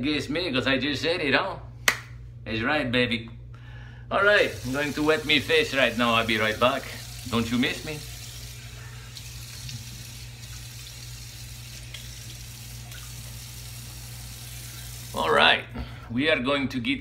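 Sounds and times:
tap water running into sink: 4.5 - 15.2.

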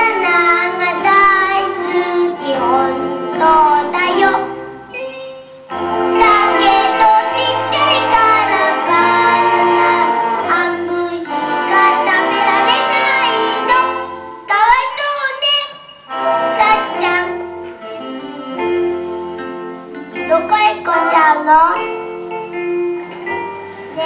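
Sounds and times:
boy singing into a microphone: 0.0 - 5.1, 6.1 - 19.0, 20.1 - 21.9
instrumental accompaniment with bass: 0.0 - 24.0.

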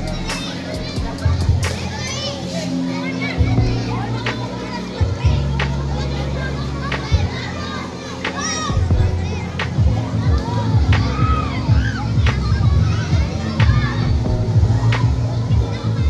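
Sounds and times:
music with steady bass line: 0.0 - 2.3, 3.3 - 16.0
children shouting and calling: 0.0 - 16.0.

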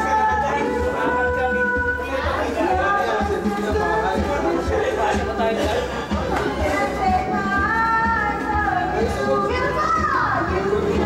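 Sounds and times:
background music with beat: 0.0 - 11.0
voices calling and talking: 0.0 - 11.0.

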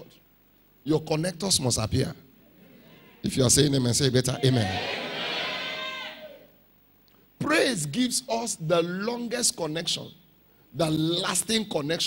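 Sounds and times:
congregation saying amen: 0.9 - 6.6.

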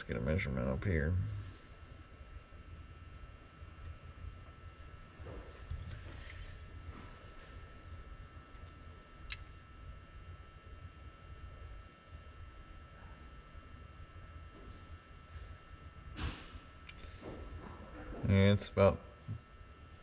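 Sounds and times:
low steady rumble: 0.0 - 20.0
sharp click: 9.3 - 9.6.

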